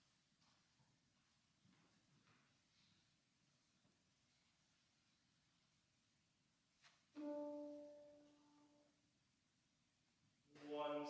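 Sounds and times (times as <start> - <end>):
piano note ringing: 7.2 - 8.9.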